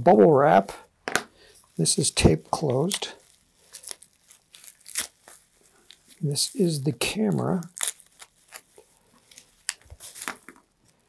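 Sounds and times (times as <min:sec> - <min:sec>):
tape tearing: 0:02.6 - 0:06.5, 0:07.4 - 0:10.6
plastic crinkling: 0:02.6 - 0:06.7, 0:07.4 - 0:11.0.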